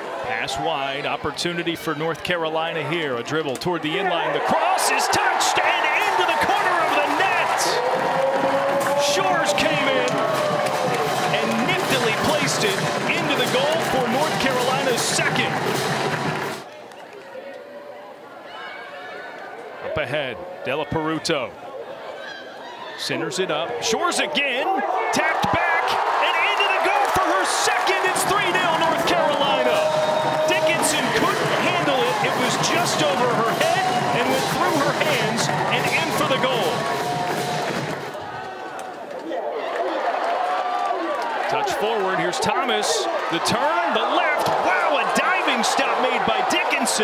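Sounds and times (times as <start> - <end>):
indistinct crowd chatter: 0.0 - 40.0.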